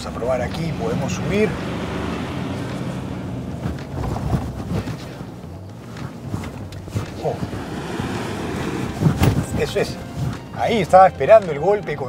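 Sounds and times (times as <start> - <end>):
diesel engine under load: 0.0 - 11.4
wind noise on microphone: 2.8 - 10.6.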